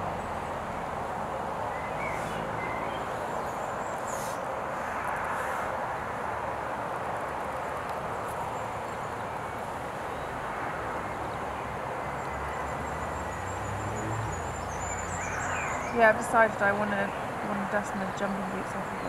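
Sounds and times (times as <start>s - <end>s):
outdoor background noise: 0.0s - 19.0s.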